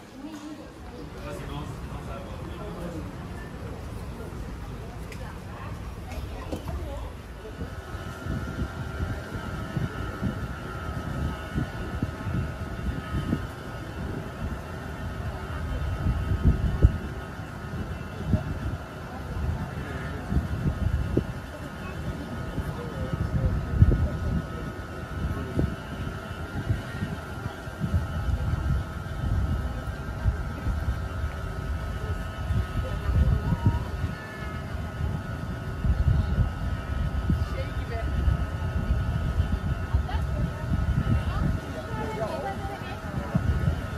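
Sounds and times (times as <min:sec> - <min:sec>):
tram riding rumble: 0:00.0 - 0:43.9
electric drive whine: 0:00.8 - 0:43.9.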